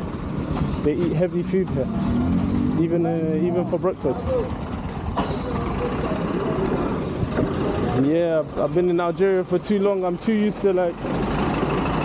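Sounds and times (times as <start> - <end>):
street traffic noise: 0.0 - 12.0
vehicle engine running: 0.0 - 12.0.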